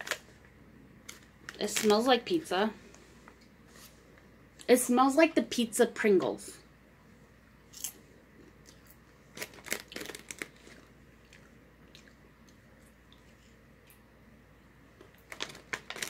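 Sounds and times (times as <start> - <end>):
person chewing popcorn: 7.7 - 14.0.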